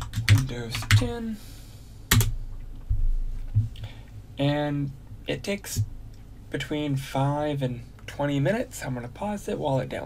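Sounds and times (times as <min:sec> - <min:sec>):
computer keyboard click: 0:02.1 - 0:02.3
soft low thumps: 0:02.3 - 0:04.3.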